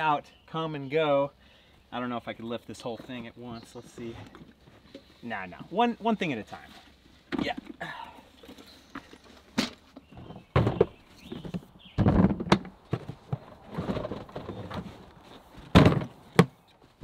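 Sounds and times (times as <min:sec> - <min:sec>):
plastic tool boxes knocking: 0:10.2 - 0:14.8, 0:15.6 - 0:16.6.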